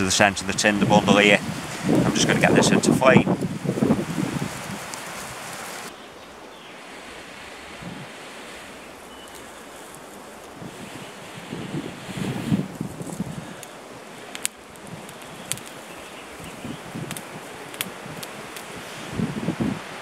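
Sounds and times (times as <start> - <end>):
burning tinder crackling: 0.0 - 20.0
breath blowing in gusts: 0.8 - 5.9, 6.8 - 20.0
rustling: 3.3 - 6.0, 6.7 - 19.2.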